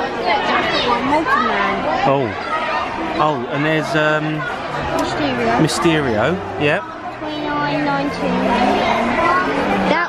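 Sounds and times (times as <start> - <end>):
indistinct voices chattering: 0.0 - 10.0.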